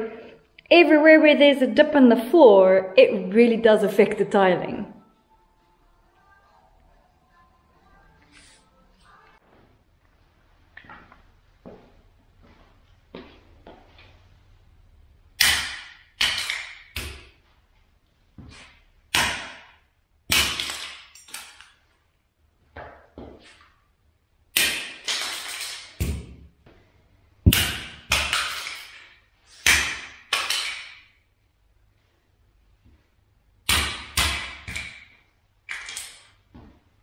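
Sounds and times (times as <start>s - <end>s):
rubber mallet cracking plastic clips: 27.5s - 31.2s.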